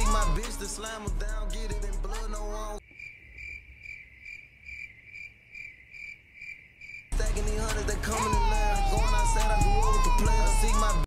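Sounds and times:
loud music: 0:00.0 - 0:02.8, 0:07.1 - 0:11.0
cricket chirping: 0:02.8 - 0:07.1.

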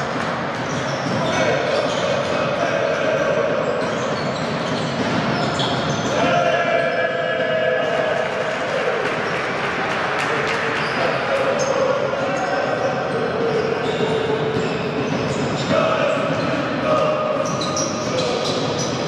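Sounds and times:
players and spectators voices: 0:00.0 - 0:19.0
ball bouncing on hardwood court: 0:03.8 - 0:06.1.

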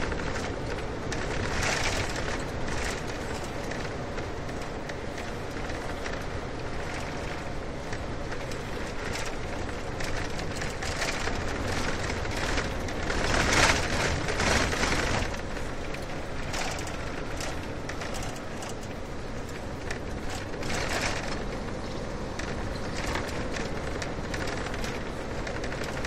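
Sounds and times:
car tyre and road noise: 0:00.0 - 0:26.0.

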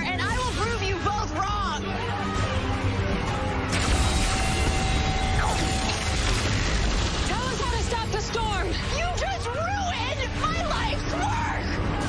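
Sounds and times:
electrical crackle: 0:03.7 - 0:08.6.

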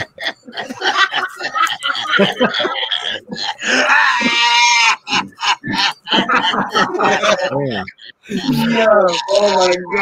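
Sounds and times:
man laughing: 0:00.0 - 0:10.0
man wailing: 0:08.4 - 0:10.0.

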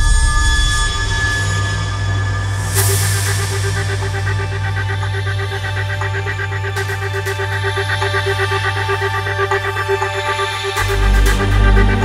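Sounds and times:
high notes over low drone: 0:00.0 - 0:12.0.

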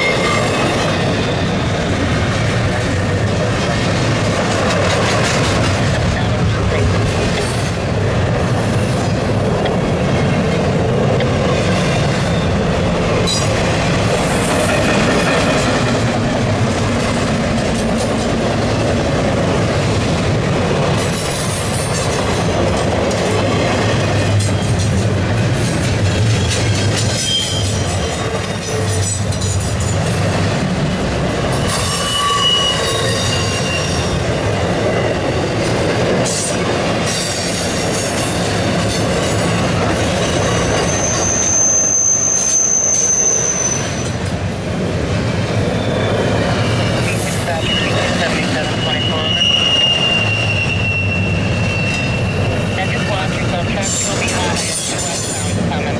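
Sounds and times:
steel wheels rumbling on rails: 0:00.0 - 0:55.9
high wheel squeals: 0:26.4 - 0:30.0, 0:31.5 - 0:35.6, 0:40.2 - 0:44.2, 0:45.6 - 0:55.6.

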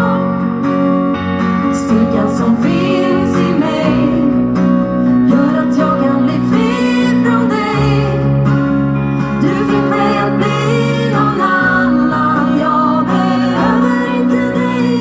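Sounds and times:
woman singing: 0:00.0 - 0:00.5, 0:01.6 - 0:08.4, 0:09.3 - 0:15.0
live pop song on guitars: 0:00.0 - 0:15.0
sustained bass line: 0:00.0 - 0:15.0.

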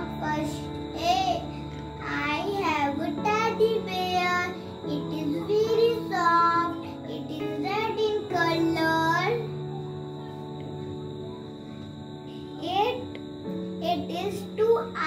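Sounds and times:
girl singing: 0:00.0 - 0:09.8, 0:12.3 - 0:13.1, 0:13.8 - 0:15.0.

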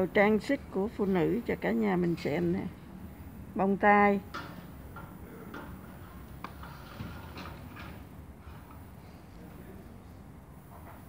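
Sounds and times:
woman speaking: 0:00.0 - 0:02.8, 0:03.5 - 0:04.3.

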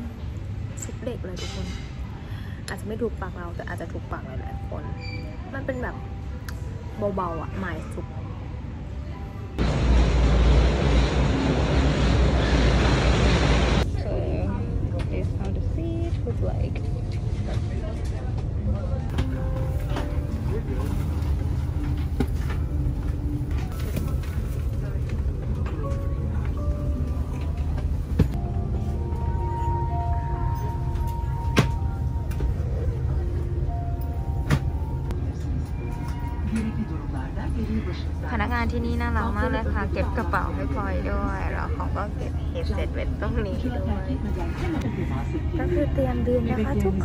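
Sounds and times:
soft background music: 0:02.7 - 0:09.6, 0:13.8 - 0:47.0
airliner cabin drone: 0:08.2 - 0:18.4, 0:19.0 - 0:47.0
loud rushing noise with rumble: 0:09.6 - 0:14.4.

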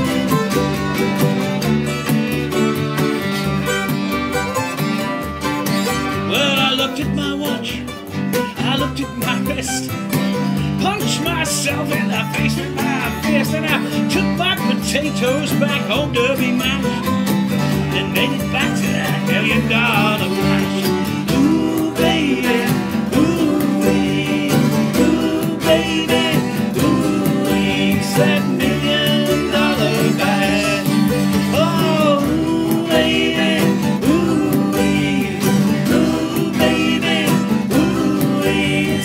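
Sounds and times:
acoustic guitar: 0:00.0 - 0:39.0
man singing: 0:06.1 - 0:39.0.

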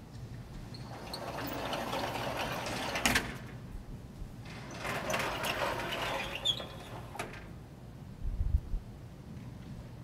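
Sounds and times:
doors rattling and scraping: 0:00.7 - 0:03.6, 0:04.4 - 0:07.6.

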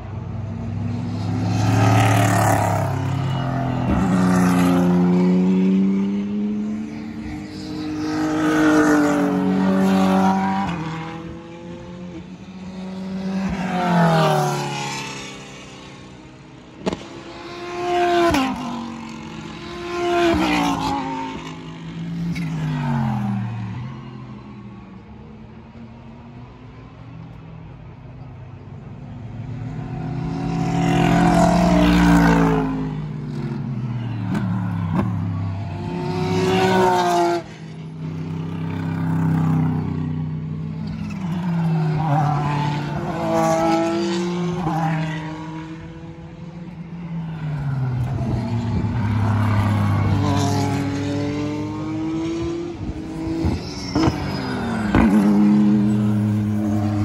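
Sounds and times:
race cars passing at speed: 0:00.0 - 0:57.0.

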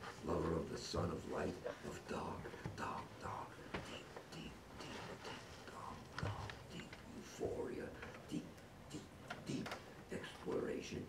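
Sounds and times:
man whispering: 0:00.0 - 0:11.0
man making wordless vocal sounds: 0:00.2 - 0:11.0.

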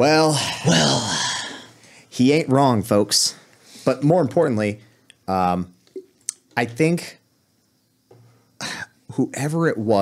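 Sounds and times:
man clearing throat: 0:00.4 - 0:01.3.

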